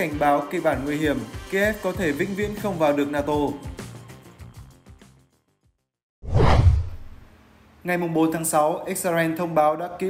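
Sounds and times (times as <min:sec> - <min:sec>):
background music: 0:00.0 - 0:05.5
transition whoosh: 0:06.2 - 0:07.3
deep low rumble: 0:06.3 - 0:07.2.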